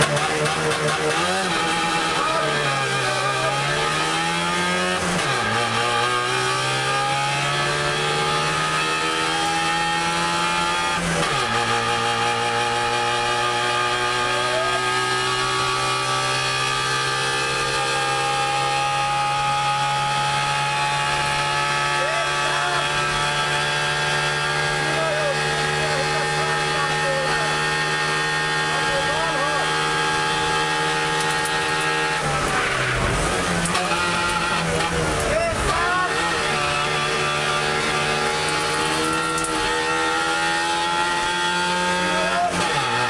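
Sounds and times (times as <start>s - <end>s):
car engine pulling hard: 0.0s - 43.0s.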